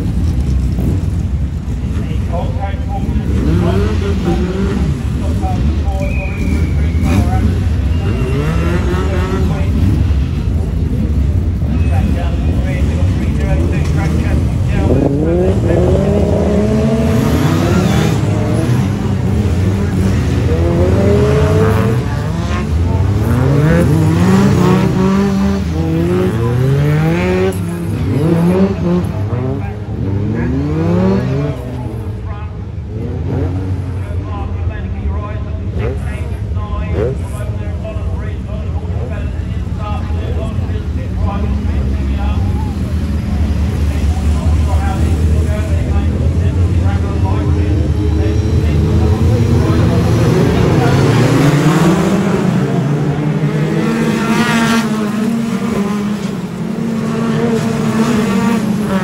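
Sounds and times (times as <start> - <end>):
racing car engines revving: 0.0 - 59.0.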